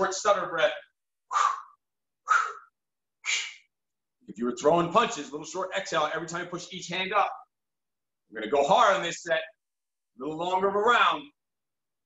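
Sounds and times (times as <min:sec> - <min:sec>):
man exhaling sharply: 0:01.3 - 0:03.7.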